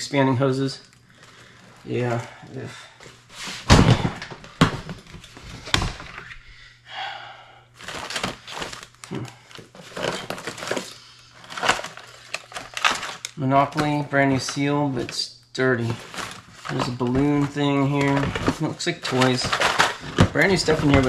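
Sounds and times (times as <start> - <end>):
items clicking and rustling: 3.0 - 6.3, 7.8 - 15.2, 15.8 - 21.0.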